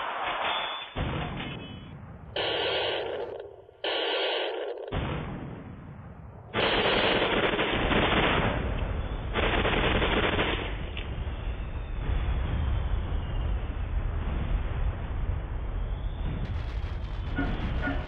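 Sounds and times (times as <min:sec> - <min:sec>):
rapid gunfire: 0:02.4 - 0:05.7, 0:06.5 - 0:10.9, 0:16.4 - 0:18.0.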